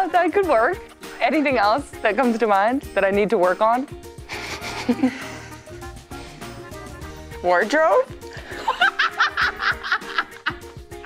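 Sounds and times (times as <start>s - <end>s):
soft background music: 0.0s - 11.0s
woman laughing: 4.3s - 5.7s, 8.4s - 10.7s.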